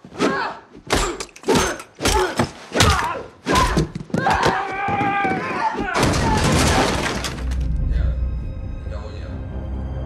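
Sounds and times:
glass shattering: 6.0 - 7.6
film music: 7.1 - 10.0.

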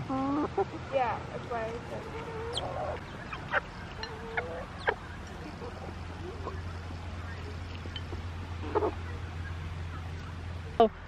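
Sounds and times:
chickens clucking: 0.0 - 10.9.

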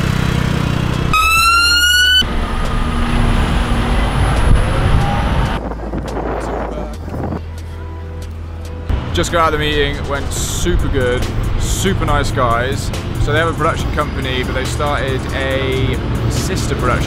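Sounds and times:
heavy lorry engine rumble: 0.0 - 17.0
passing vehicles: 0.0 - 17.0
siren rising tone: 1.1 - 5.6.

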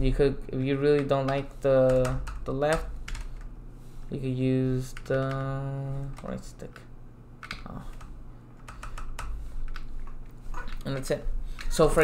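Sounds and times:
keyboard typing clicks: 7.4 - 11.8.

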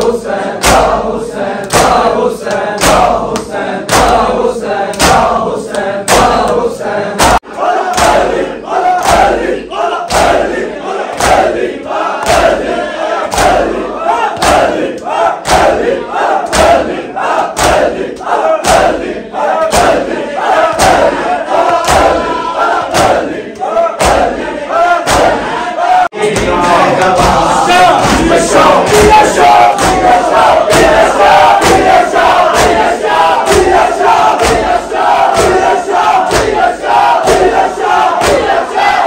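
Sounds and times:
men chanting in unison: 0.0 - 39.0
hands slapping chests: 0.6 - 1.0, 1.6 - 9.5, 10.1 - 10.5, 11.1 - 11.6, 12.2 - 12.7, 13.3 - 13.8, 14.4 - 24.4, 25.0 - 25.4, 26.2 - 38.6.

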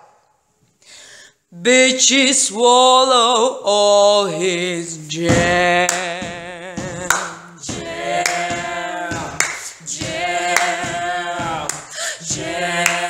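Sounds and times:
voices singing a chorus: 1.7 - 13.0
beat with sharp hits: 5.2 - 13.0.

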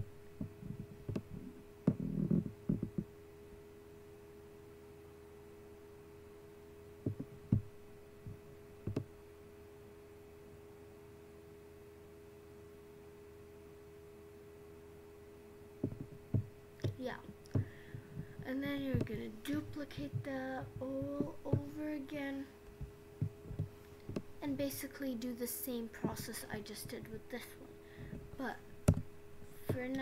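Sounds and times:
electrical hum with tones: 0.0 - 30.0.

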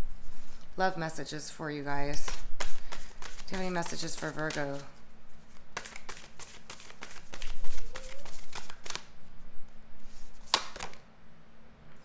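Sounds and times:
cards being shuffled: 2.1 - 9.2, 10.0 - 11.0.

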